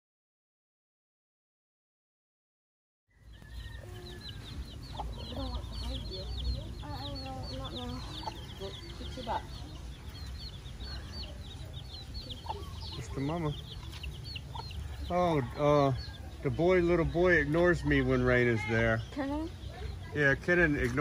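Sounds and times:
chicks peeping: 3.1 - 21.0
hen clucking: 3.3 - 21.0.

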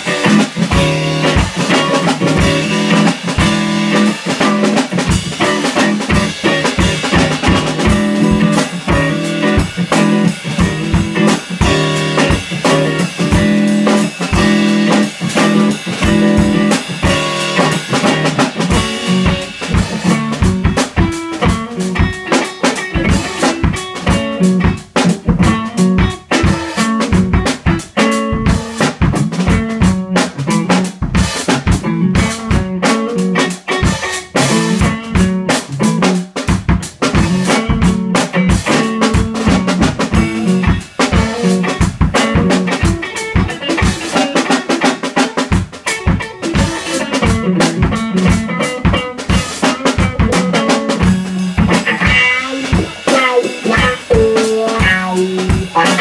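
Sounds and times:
drum kit fast beat: 0.0 - 56.0
electric guitar: 0.0 - 56.0.

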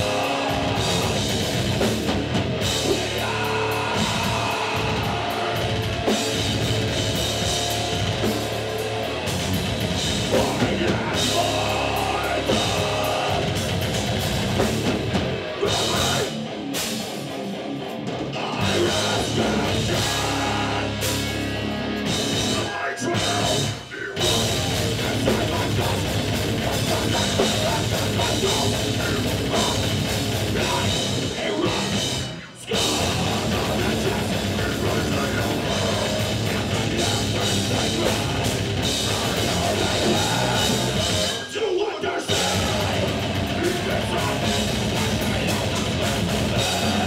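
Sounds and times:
drum kit with crashing cymbals: 0.0 - 17.4, 18.6 - 41.5, 42.3 - 47.0
bass guitar: 0.0 - 47.0
distorted electric guitars: 0.0 - 47.0
heavy metal band playing live: 0.0 - 47.0.

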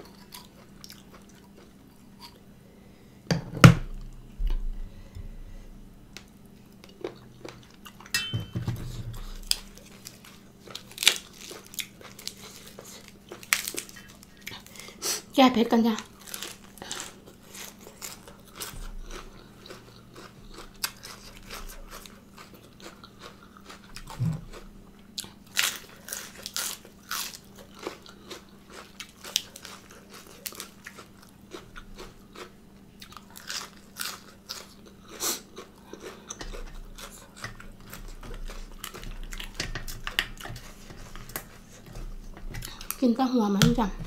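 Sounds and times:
person chewing crunchy food: 0.0 - 2.8, 3.9 - 8.1, 8.8 - 15.3, 16.0 - 43.1.

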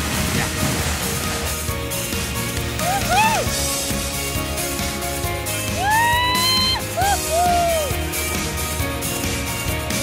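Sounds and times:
background music: 0.0 - 10.0
person whooping in high voice: 2.8 - 3.5, 5.8 - 8.0.

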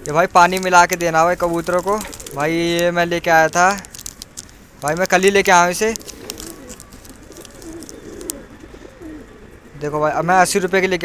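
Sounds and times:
pigeons cooing: 0.0 - 3.0, 5.0 - 11.0.

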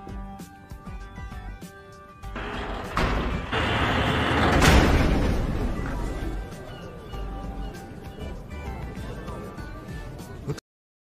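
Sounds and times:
rushing noise: 2.4 - 5.9.

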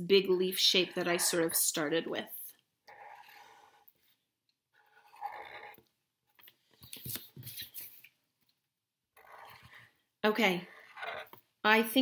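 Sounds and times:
marker scratching on paper: 0.8 - 1.6, 6.8 - 8.0.

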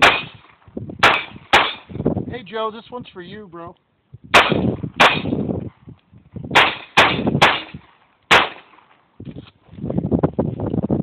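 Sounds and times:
pistol shots with echo: 0.0 - 0.4, 1.0 - 1.9, 4.3 - 5.4, 6.5 - 8.9.

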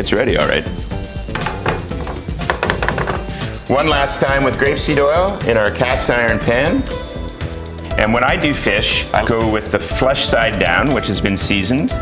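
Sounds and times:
vegetables sizzling on a sheet pan: 0.2 - 3.5
metal tray clattering on grates: 1.3 - 3.5.

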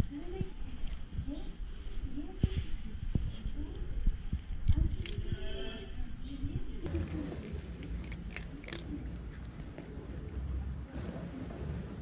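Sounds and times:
cat crunching dry kibble: 6.9 - 10.4.

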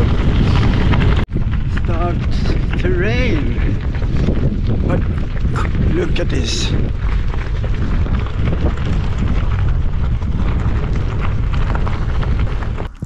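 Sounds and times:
tyres rolling on gravel: 0.0 - 13.0
wind buffeting microphone: 0.0 - 13.0.

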